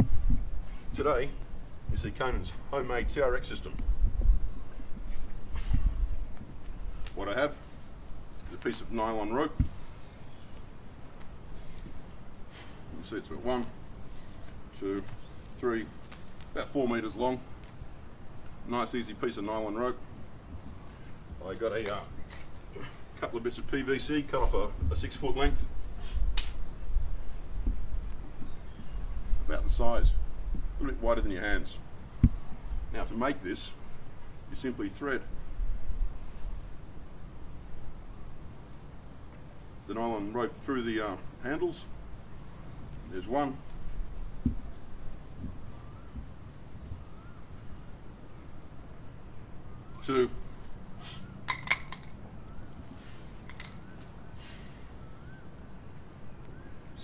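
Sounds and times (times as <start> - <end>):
wind buffeting microphone: 0.0 - 7.2, 24.0 - 33.0
rope handling noise: 3.8 - 12.8, 13.9 - 16.7, 49.9 - 55.4.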